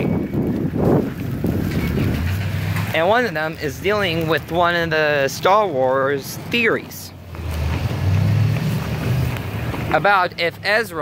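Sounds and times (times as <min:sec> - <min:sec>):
wind buffeting microphone: 0:00.0 - 0:10.7.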